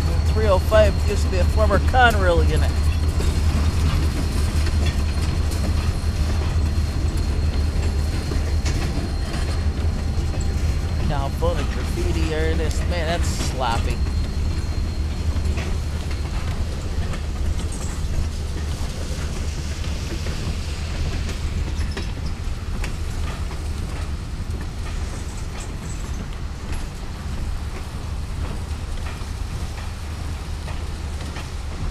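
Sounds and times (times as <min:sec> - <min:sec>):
train wheels rumbling on rail: 0:00.0 - 0:31.9.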